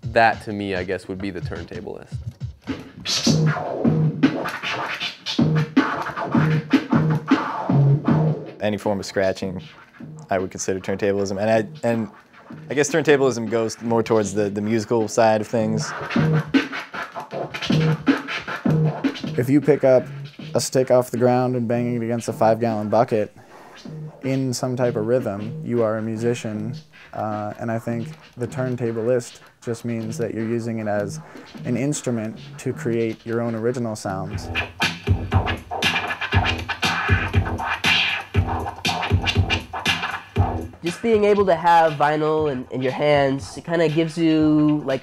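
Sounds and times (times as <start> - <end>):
record scratching on turntable: 0.0 - 45.0
repeating drum beat: 0.0 - 45.0.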